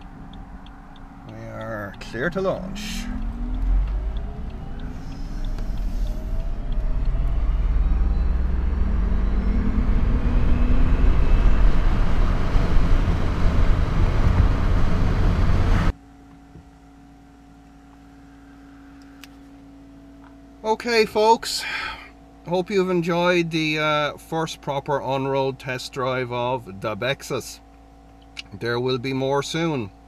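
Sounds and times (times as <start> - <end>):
electric motor whine: 0.0 - 15.9
tyre and road noise: 0.0 - 15.9
faint steady hum: 0.0 - 30.0.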